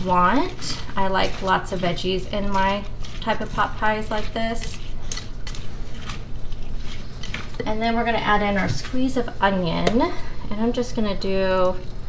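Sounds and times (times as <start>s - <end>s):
spatula stirring thick sauce: 0.0s - 7.6s.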